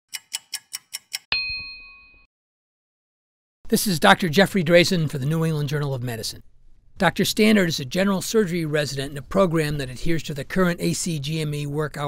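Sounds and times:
clock ticks: 0.1s - 1.3s
bell-like ding: 1.3s - 2.3s.

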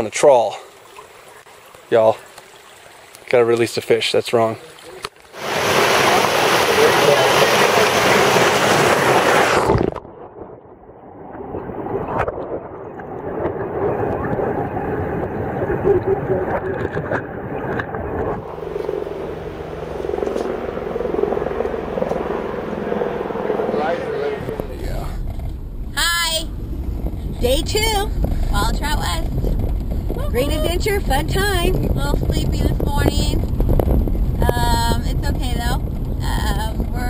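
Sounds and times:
creek rushing over boulders: 0.0s - 10.0s
muffled rumble: 6.0s - 37.0s.

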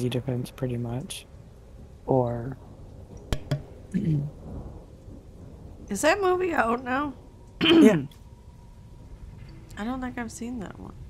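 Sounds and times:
person speaking: 0.0s - 1.2s, 2.1s - 2.6s, 3.5s - 4.3s, 7.7s - 8.1s
low rumbling noise with hiss: 0.0s - 11.0s.

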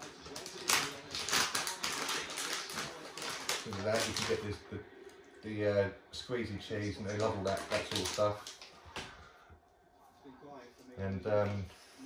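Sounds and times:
treat packet crinkling: 0.0s - 4.6s, 6.7s - 8.8s.

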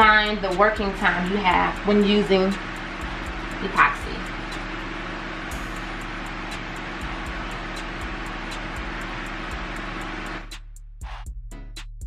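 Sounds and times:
music with a beat: 0.0s - 12.0s.

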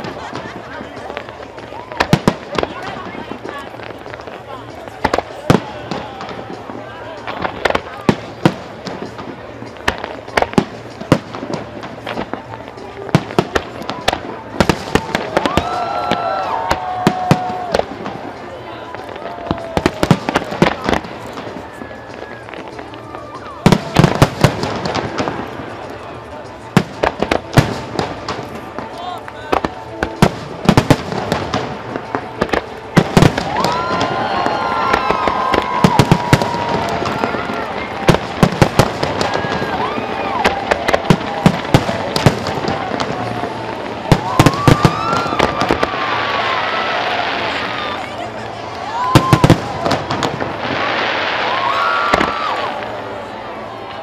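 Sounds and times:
fireworks bangs and crackles: 0.0s - 54.0s.

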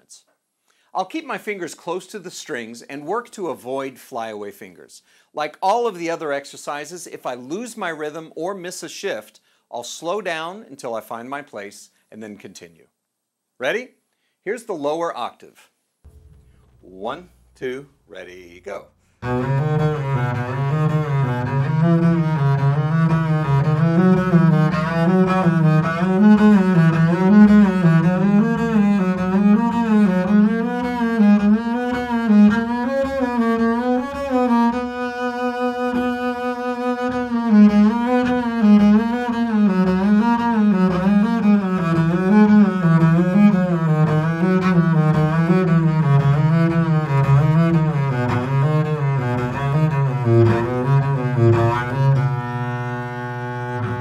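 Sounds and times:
bowed double bass scales: 16.1s - 54.0s.

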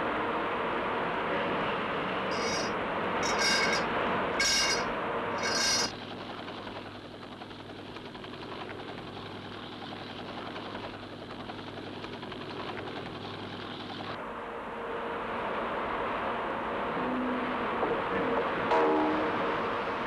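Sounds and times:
helicopter cabin drone: 0.0s - 20.0s
drilling rig machinery running: 2.2s - 14.2s
short high-pitched squeals: 2.3s - 5.9s.

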